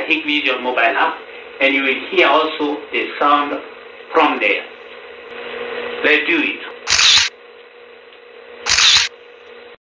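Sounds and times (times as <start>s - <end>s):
phone camera shutter sound: 6.9s - 7.3s, 8.7s - 9.2s.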